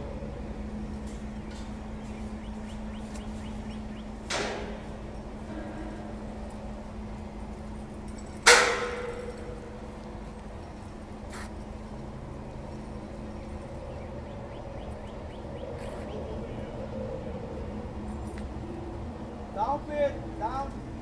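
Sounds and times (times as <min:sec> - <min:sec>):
forklift engine humming: 0:00.0 - 0:21.0
sharp metal clang: 0:08.4 - 0:09.6.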